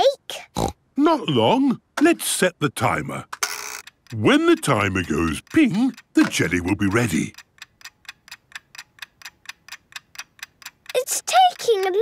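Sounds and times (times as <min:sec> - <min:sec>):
kitchen timer ticking: 0:03.8 - 0:12.0.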